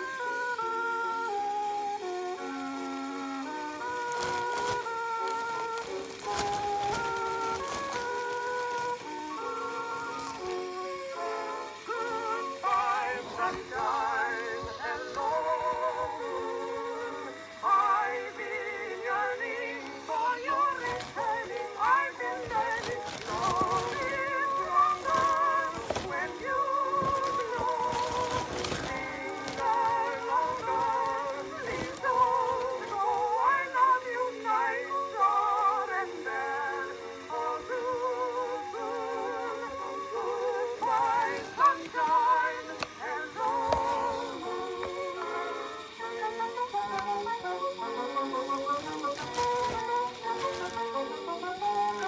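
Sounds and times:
gramophone record playback: 0.0 - 52.0
chorus singing: 2.4 - 52.0
woman singing: 11.1 - 52.0.

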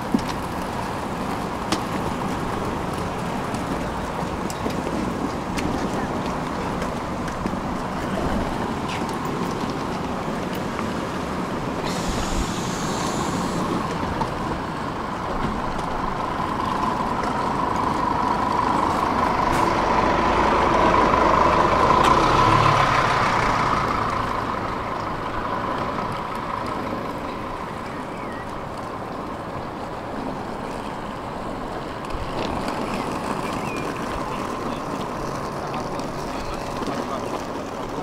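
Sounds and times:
bus engine and road noise: 0.0 - 38.0
brief hiss: 11.8 - 13.8.

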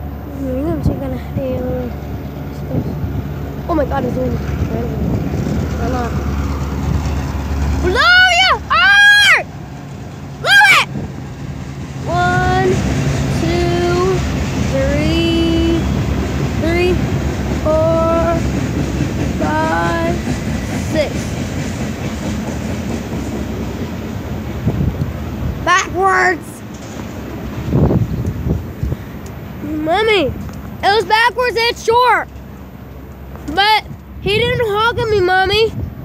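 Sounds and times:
diesel train rumbling past: 0.0 - 36.0
child shouting excitedly: 7.8 - 9.5, 10.4 - 11.0, 12.1 - 14.2, 25.6 - 26.6, 29.6 - 32.3, 33.5 - 35.7.

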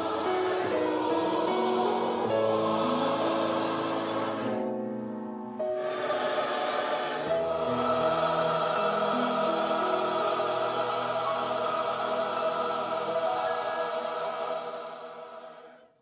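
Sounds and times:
choir singing sustained chord: 0.0 - 16.0.

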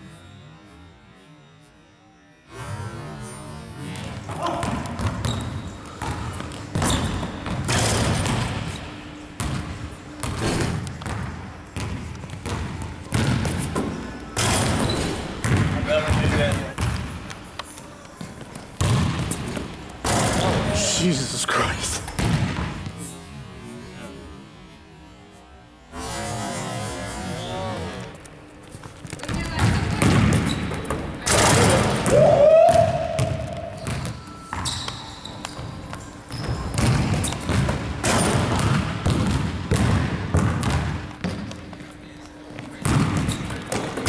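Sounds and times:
basketball slamming rim: 14.4 - 17.0, 18.8 - 20.7, 22.1 - 22.7, 29.3 - 34.1, 42.8 - 44.0
basketball bouncing on wooden floor: 14.4 - 17.1, 29.1 - 31.0, 36.3 - 41.5.

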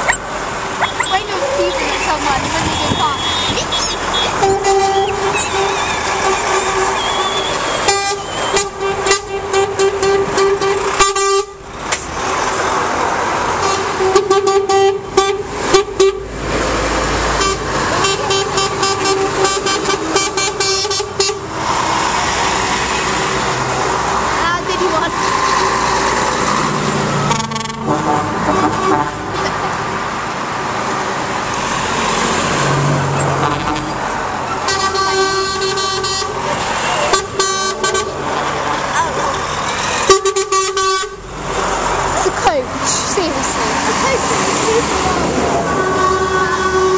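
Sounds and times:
diesel engines passing: 0.0 - 46.9
truck horn blasts: 0.8 - 11.6, 13.6 - 16.3, 17.3 - 21.5, 27.3 - 29.6, 33.4 - 38.6, 40.0 - 41.3, 45.0 - 46.9.

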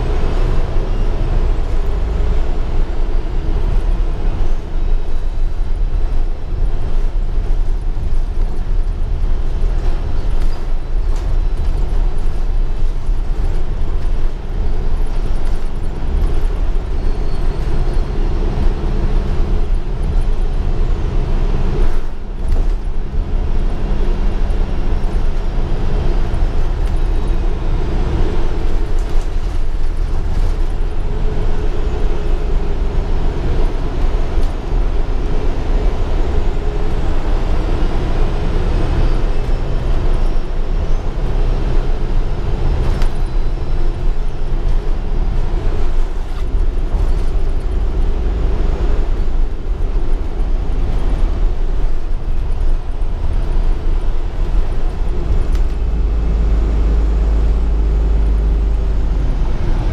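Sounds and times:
bus engine running: 0.0 - 59.9
road noise hum: 0.0 - 59.9.

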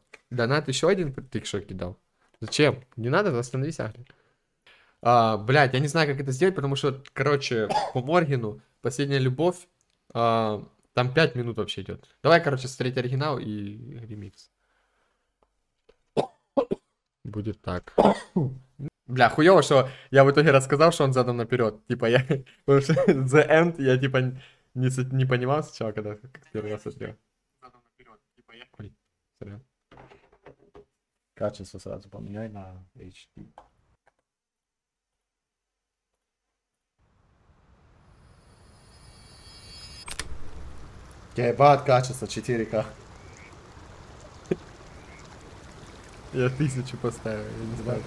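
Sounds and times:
man coughing: 7.7 - 8.0, 16.2 - 16.8, 18.0 - 18.6, 22.9 - 23.2
cluster of sharp clicks: 40.1 - 41.3
low rumble: 40.1 - 47.9.

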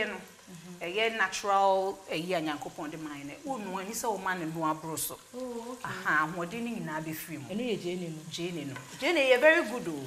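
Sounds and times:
frying sizzle: 0.0 - 10.0
woman talking: 0.0 - 10.0
wooden spatula stirring in pot: 8.4 - 10.0.

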